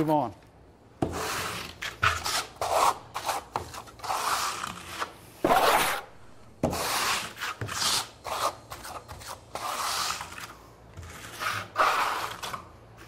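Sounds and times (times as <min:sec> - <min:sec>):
trowel scraping wet coating: 0:01.0 - 0:06.0, 0:06.7 - 0:13.0.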